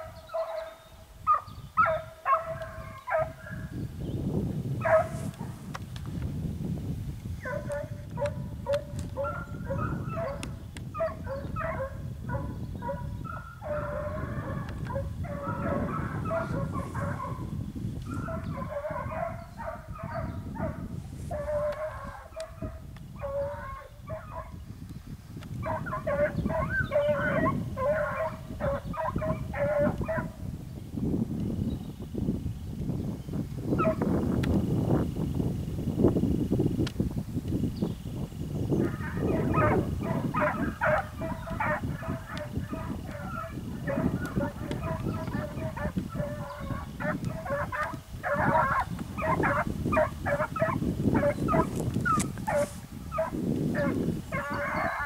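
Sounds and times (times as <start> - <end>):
hounds baying: 0.0 - 3.7, 4.8 - 5.6, 7.4 - 24.6, 25.6 - 30.4, 33.8 - 34.0, 38.8 - 55.0.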